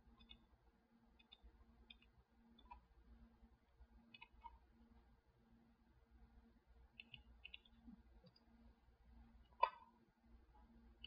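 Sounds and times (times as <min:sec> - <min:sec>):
low steady hum: 0:00.0 - 0:11.0
computer mouse clicks: 0:00.1 - 0:00.5, 0:01.2 - 0:02.9, 0:04.1 - 0:04.6, 0:06.9 - 0:08.5, 0:09.5 - 0:09.9.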